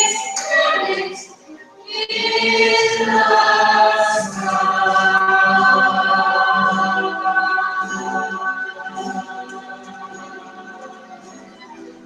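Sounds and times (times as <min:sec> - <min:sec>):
choir of young voices singing: 0:00.0 - 0:12.0.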